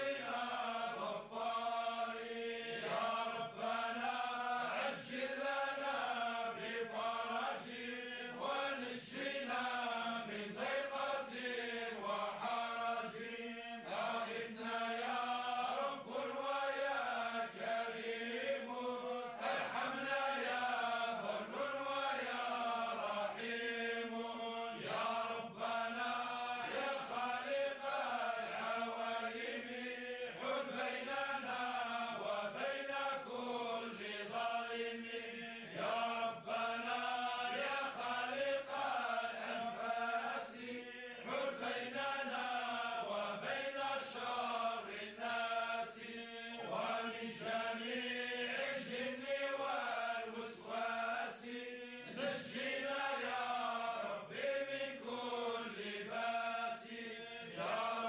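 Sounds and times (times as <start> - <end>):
men chanting devotional poetry: 0.0 - 58.0.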